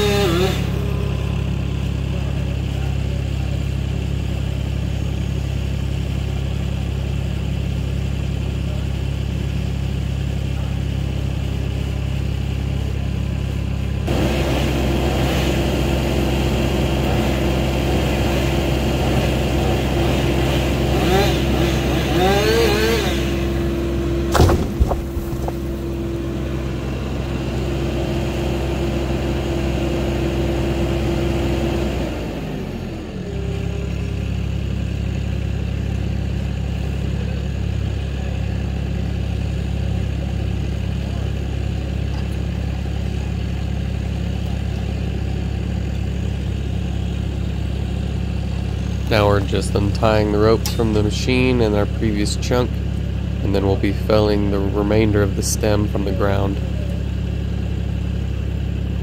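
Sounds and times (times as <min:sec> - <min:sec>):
skid steer engine running: 0:00.0 - 0:59.0
sharp knock: 0:24.3 - 0:25.8.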